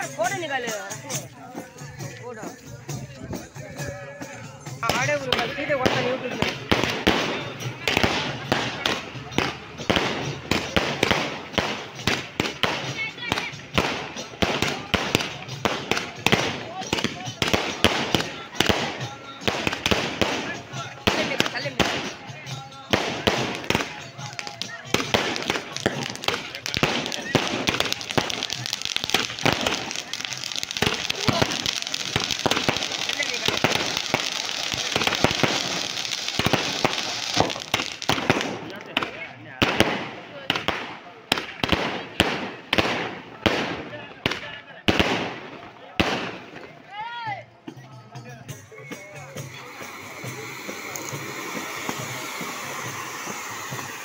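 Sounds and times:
fireworks cracking and popping: 0.0 - 47.1, 47.7 - 54.0
fountain fireworks crackling hiss: 0.0 - 54.0
firework bangs: 4.8 - 46.8, 48.9 - 54.0.

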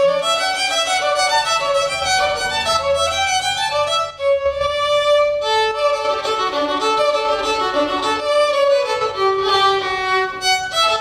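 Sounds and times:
bowed violin melody: 0.0 - 11.0.

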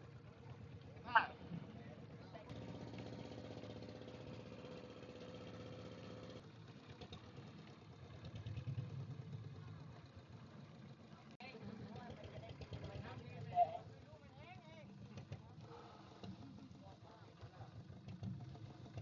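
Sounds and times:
boat engine running: 0.0 - 19.0.

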